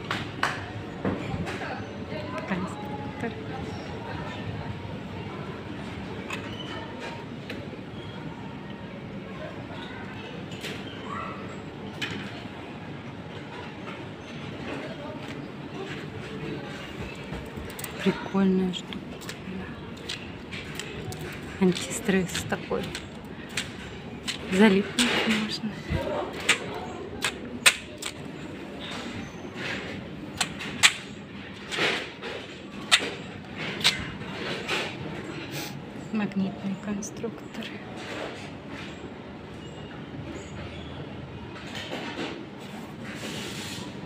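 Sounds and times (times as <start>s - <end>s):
indoor play hall din: 0.0s - 36.0s
faint distant voices: 0.0s - 44.0s.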